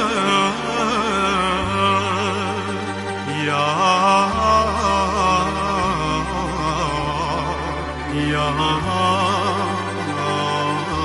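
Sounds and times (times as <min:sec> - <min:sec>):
man singing ornamented folk song: 0:00.0 - 0:11.0.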